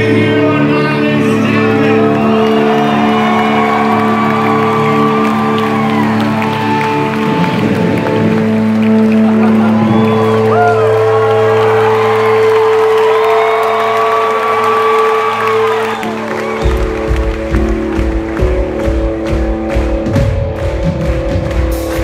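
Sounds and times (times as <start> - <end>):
audience cheering and whooping: 1.7 - 17.8
music with steady drum beat: 16.6 - 22.0.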